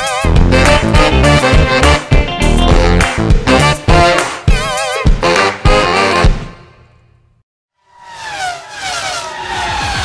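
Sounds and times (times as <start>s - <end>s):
car engine passing by: 7.9s - 10.0s.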